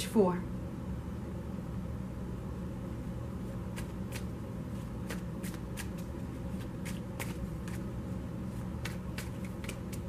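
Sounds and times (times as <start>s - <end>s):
steady low hum: 0.0s - 10.0s
cards being shuffled: 3.7s - 10.0s.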